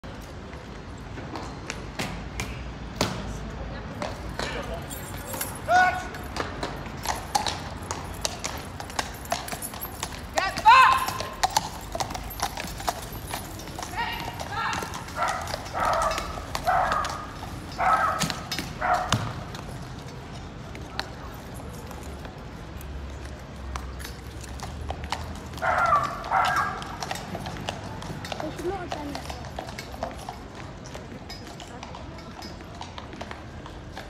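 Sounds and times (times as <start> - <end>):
horse hooves clopping on paving: 3.8 - 34.0.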